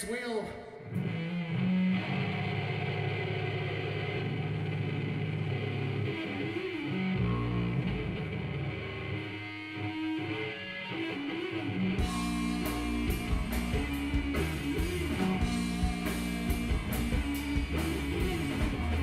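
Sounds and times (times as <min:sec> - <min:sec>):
electric guitars: 0:00.0 - 0:19.0
bass guitar: 0:00.7 - 0:19.0.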